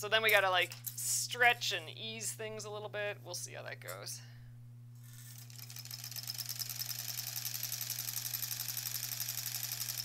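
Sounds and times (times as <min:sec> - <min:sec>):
sewing machine stitching: 0:05.2 - 0:10.0.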